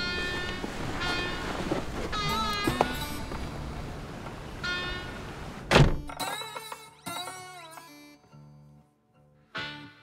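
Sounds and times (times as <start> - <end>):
car door shutting: 5.6 - 6.1.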